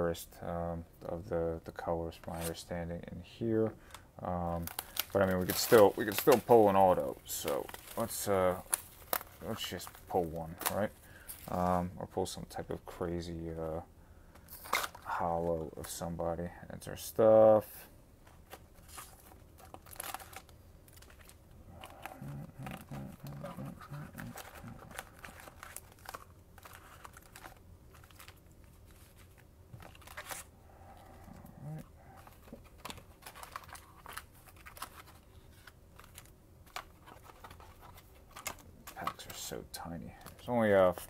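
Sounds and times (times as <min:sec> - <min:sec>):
foil packs crinkling: 0:03.8 - 0:11.8, 0:18.5 - 0:30.5, 0:31.1 - 0:41.0.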